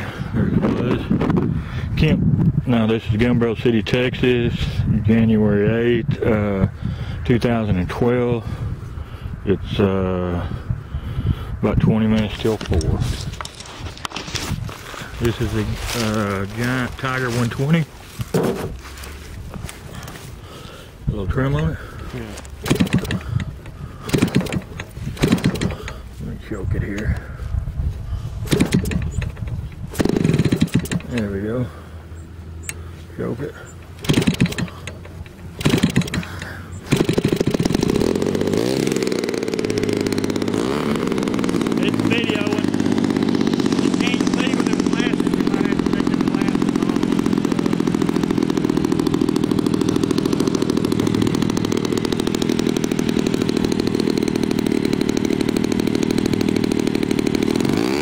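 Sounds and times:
small engine popping as it catches: 22.4 - 26.0, 28.5 - 31.2, 33.8 - 58.0.

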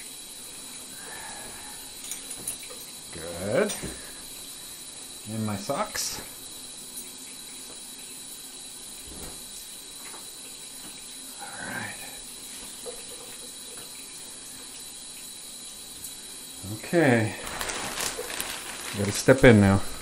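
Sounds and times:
shower water running: 0.0 - 20.0.

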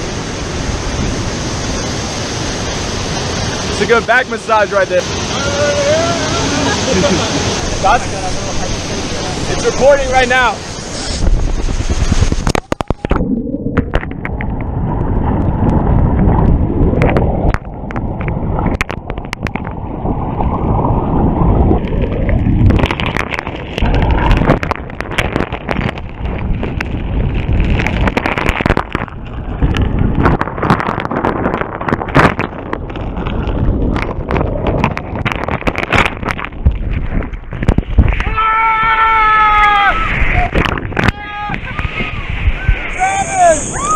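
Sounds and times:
muffled waterfall churning: 0.0 - 43.9.

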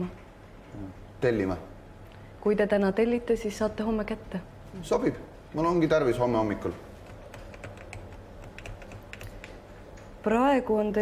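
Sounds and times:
computer keyboard typing: 7.0 - 9.6.

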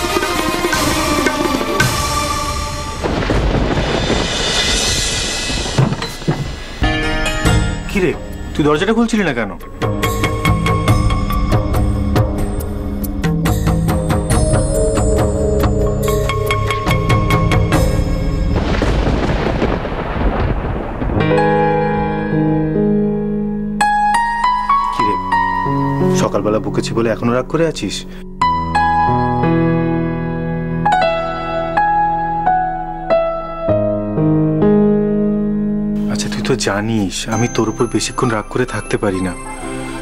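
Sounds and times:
musical hit: 0.0 - 8.8
dramatic background music: 0.0 - 31.1
loud rumbling crash: 1.9 - 7.9, 18.2 - 21.7.

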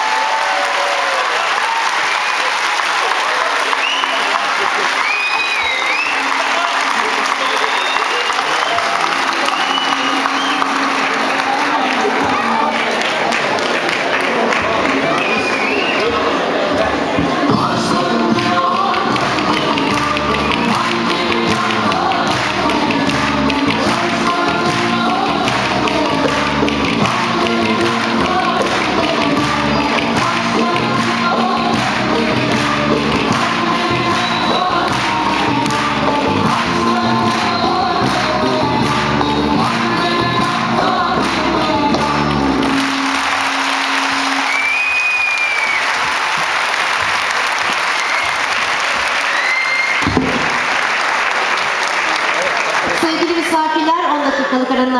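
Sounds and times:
audience applause: 0.0 - 53.7
folk dance music: 3.1 - 50.7
whistles: 3.7 - 4.4, 5.0 - 6.3, 7.3 - 10.8, 15.1 - 16.1, 44.4 - 46.0, 49.3 - 50.1.

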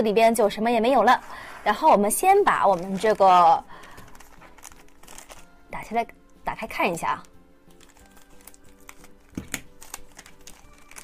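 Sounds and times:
plastic crinkling: 0.9 - 5.6, 6.9 - 11.0
scissors snipping plastic: 7.8 - 11.0.

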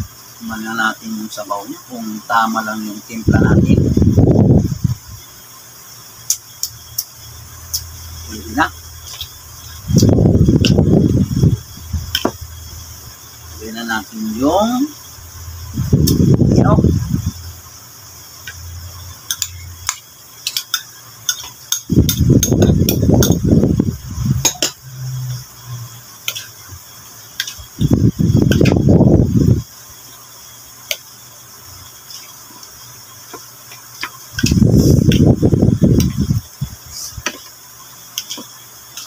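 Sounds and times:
hands mixing food in a bowl: 19.3 - 23.4, 38.2 - 39.0
low handling noise: 27.4 - 29.6.

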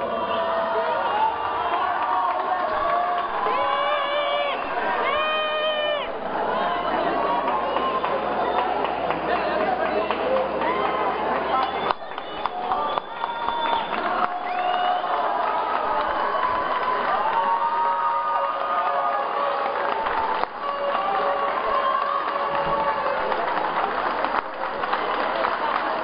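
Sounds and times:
arena crowd cheering and shouting: 0.0 - 26.0.

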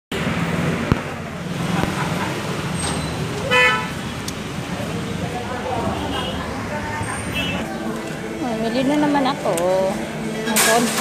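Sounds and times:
road traffic noise: 0.1 - 11.0
vehicle horn toot: 3.5 - 4.0, 5.9 - 6.5, 7.3 - 7.6.

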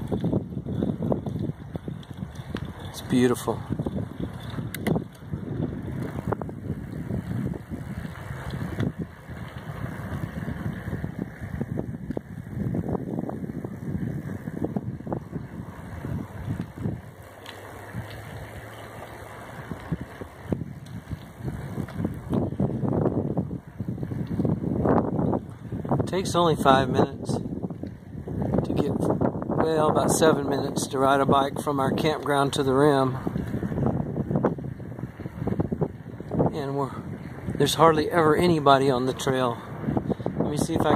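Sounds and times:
bicycle tyres rolling on asphalt: 0.0 - 40.9
wind buffeting microphone: 0.0 - 40.9.

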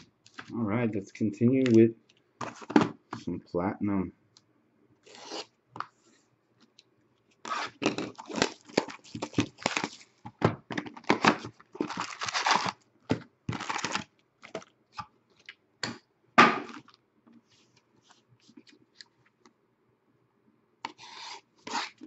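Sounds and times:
plastic shrink wrap ripping: 7.4 - 10.1, 11.0 - 12.8, 13.5 - 14.7.

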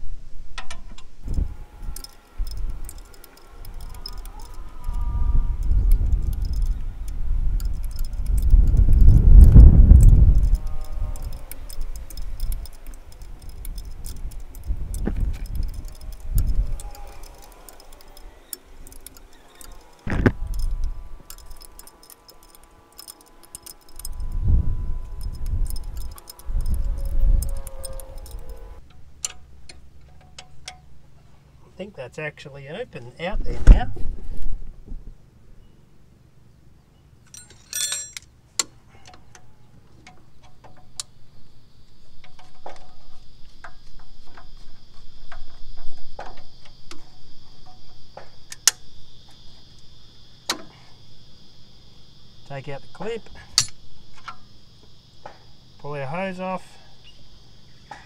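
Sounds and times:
spanner clinking and scraping: 0.6 - 30.9, 37.2 - 41.2, 52.5 - 56.6
sharp click: 53.6 - 54.4.

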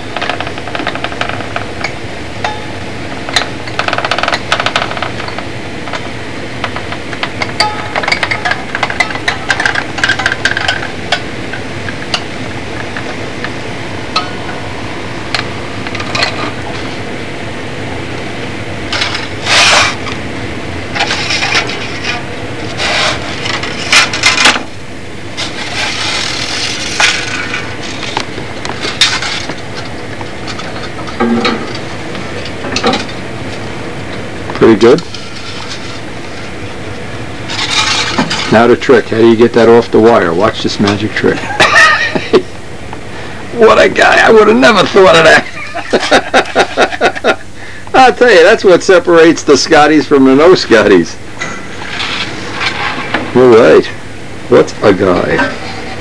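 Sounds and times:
steady hum: 0.0 - 56.0
hot wire scraping through foam: 19.4 - 20.0, 25.4 - 28.2, 51.8 - 53.2.

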